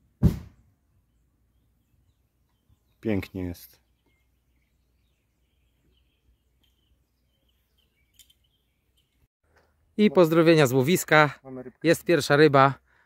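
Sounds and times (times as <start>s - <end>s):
faint bird chirps: 1.0s - 9.3s.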